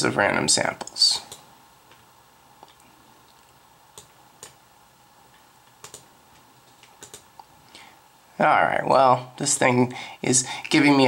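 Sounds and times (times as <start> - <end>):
faint computer clicks: 5.3 - 7.5.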